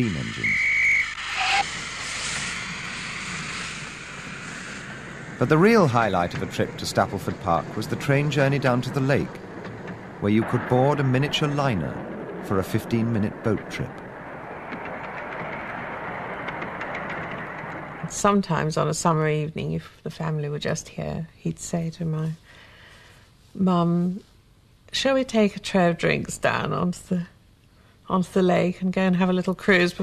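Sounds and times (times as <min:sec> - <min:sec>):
steam locomotive rushing: 0:00.0 - 0:19.4
miniature train running on track: 0:05.4 - 0:11.8.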